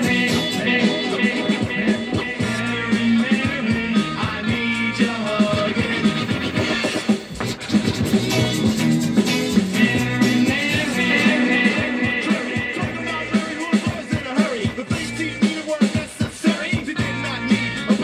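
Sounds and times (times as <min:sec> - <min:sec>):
person singing: 0:00.0 - 0:07.0, 0:09.6 - 0:18.0
guitar-led rock band: 0:00.0 - 0:18.0
steady bass line: 0:00.0 - 0:18.0.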